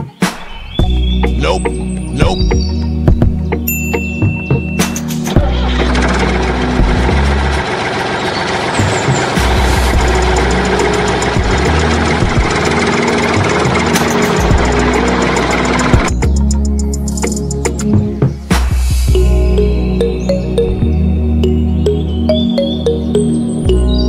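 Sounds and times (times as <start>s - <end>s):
background music with bass: 0.0s - 7.7s, 8.8s - 24.0s
toy tractor engine running: 5.4s - 16.6s.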